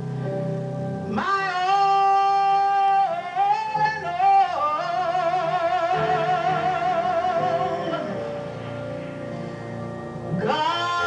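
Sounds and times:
woman singing gospel melody: 1.1s - 8.2s, 10.4s - 11.0s.

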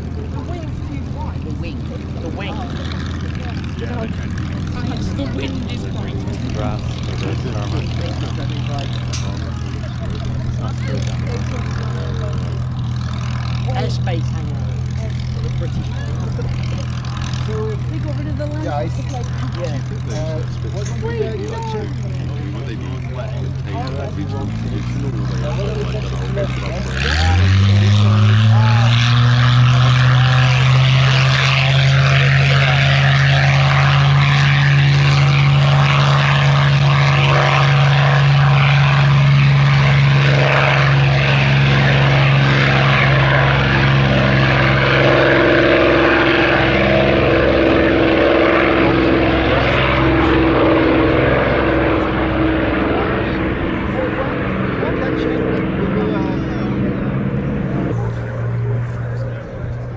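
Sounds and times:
propeller plane engine at take-off: 0.0s - 59.9s.

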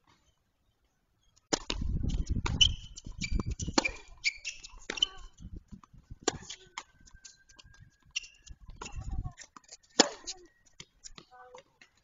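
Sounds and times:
shoes squeaking on court: 1.2s - 12.0s
tennis ball struck and bouncing: 1.5s - 5.2s, 6.2s - 7.0s, 8.1s - 11.3s.

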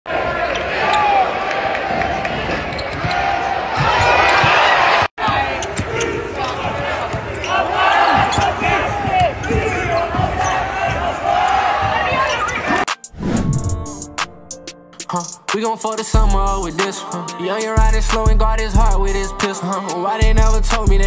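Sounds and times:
voices echoing in hall: 5.2s - 12.9s, 15.5s - 17.8s, 19.1s - 20.3s.

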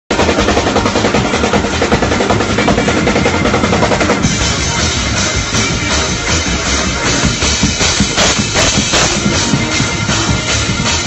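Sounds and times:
drawbar organ played fast: 0.1s - 11.0s
drum kit rapid beat: 0.1s - 11.0s.

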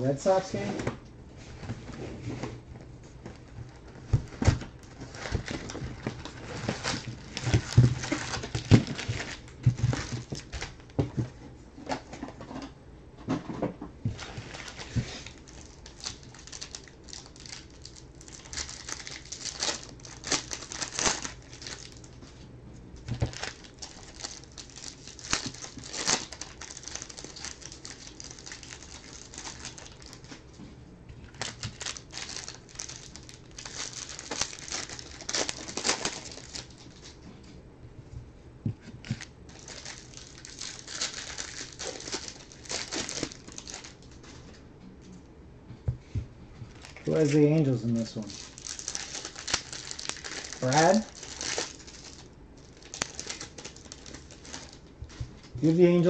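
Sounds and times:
foil packs crinkling: 3.4s - 11.0s, 14.2s - 22.3s, 23.0s - 30.5s, 31.2s - 37.2s, 39.0s - 44.2s, 46.7s - 56.0s.

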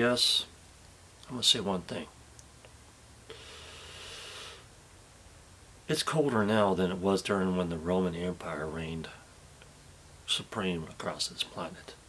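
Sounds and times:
man breathing: 3.3s - 4.7s.

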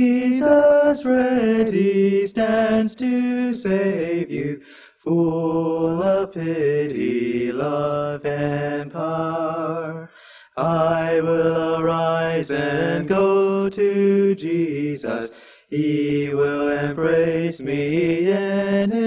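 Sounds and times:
two men singing a hymn: 0.0s - 19.0s.

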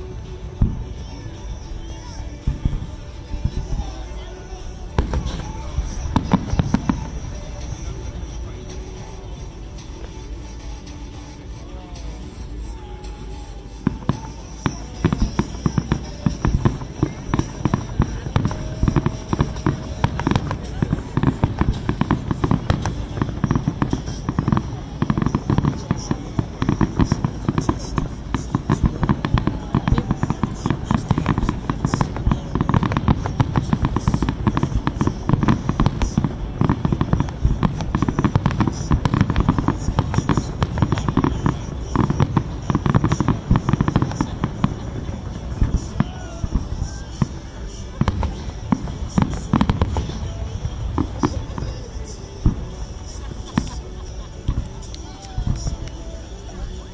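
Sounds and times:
fireworks bursting and crackling: 0.0s - 56.9s.

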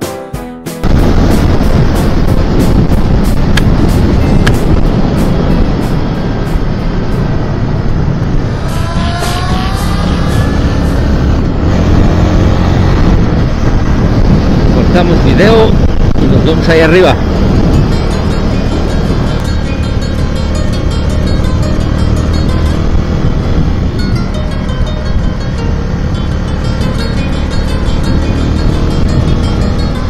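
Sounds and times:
motorcycle engine running: 0.8s - 30.0s
wind rush: 0.8s - 30.0s.

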